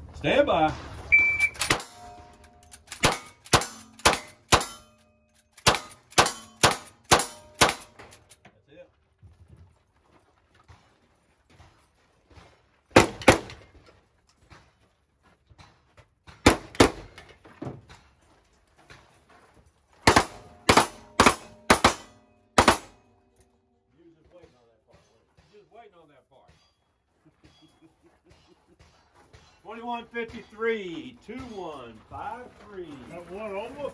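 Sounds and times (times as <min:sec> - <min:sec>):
steel targets ringing: 0:01.2 - 0:08.1, 0:20.2 - 0:23.2
rifle shots: 0:01.4 - 0:04.9, 0:05.6 - 0:08.1, 0:12.9 - 0:13.6, 0:16.4 - 0:17.2, 0:20.0 - 0:23.1.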